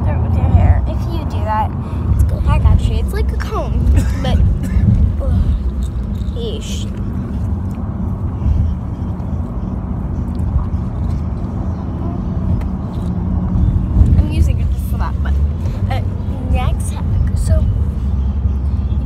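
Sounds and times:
car cabin engine and road rumble: 0.0s - 19.0s.

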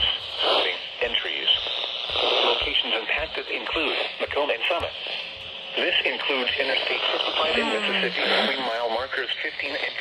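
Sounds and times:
radio voice reading warning: 5.8s - 10.0s.

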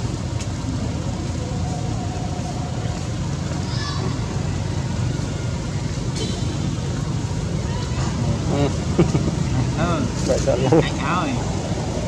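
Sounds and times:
people's voices: 0.0s - 12.0s
steady low rumble: 0.0s - 12.0s.

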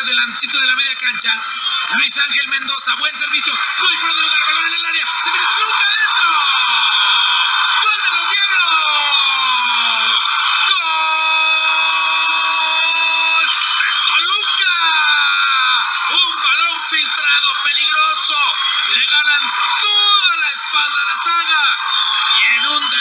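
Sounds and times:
excited sports commentator: 0.0s - 23.0s.

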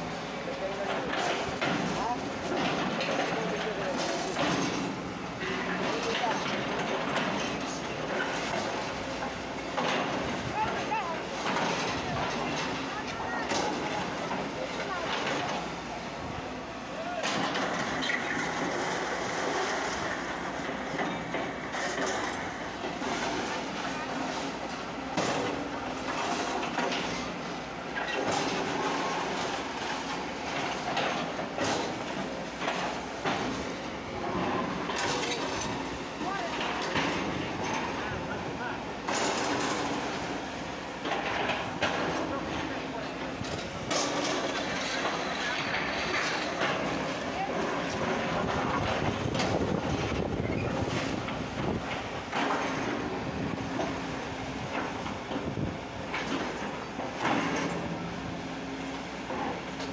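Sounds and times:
diesel engines running: 0.0s - 59.9s.

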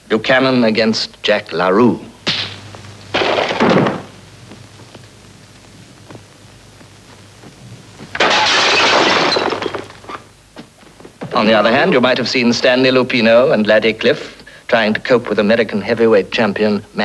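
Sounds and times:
submachine gun fire: 2.3s - 4.1s
furniture crashing: 3.1s - 4.2s, 8.1s - 10.2s.

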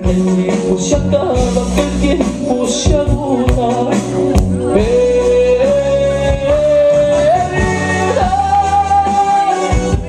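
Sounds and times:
instrumental backing: 0.0s - 10.0s
man singing romantic ballad: 0.0s - 10.0s.

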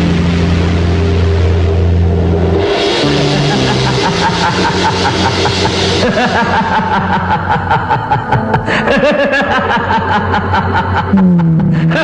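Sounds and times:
low held drone: 0.0s - 12.0s
rhythmic music: 1.8s - 11.2s.

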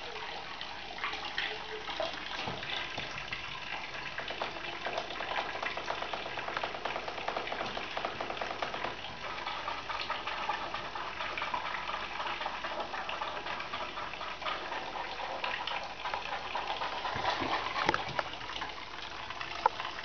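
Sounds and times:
water tap running: 0.0s - 20.0s.

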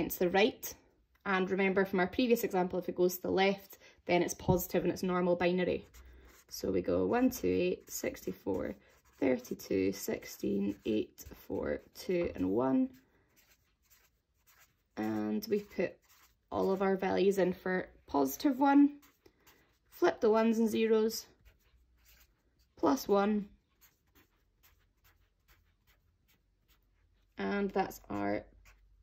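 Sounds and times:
marker scratching on paper: 4.2s - 29.0s.

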